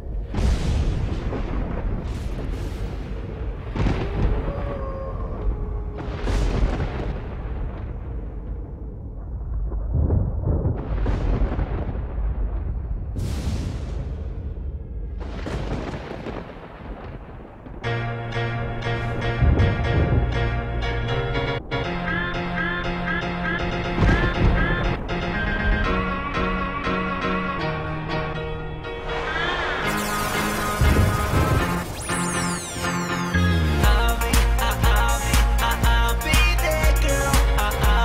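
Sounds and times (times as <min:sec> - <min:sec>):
deep rumbling boom: 0:00.0 - 0:26.3
music with deep bass and chords: 0:17.9 - 0:26.1, 0:29.9 - 0:38.0
hissing rush: 0:29.0 - 0:34.3.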